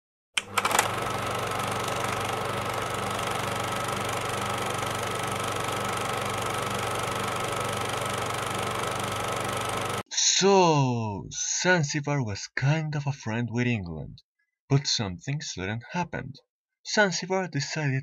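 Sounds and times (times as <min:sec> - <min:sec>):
quick clicks: 0:00.4 - 0:01.2
machine humming: 0:00.4 - 0:10.0.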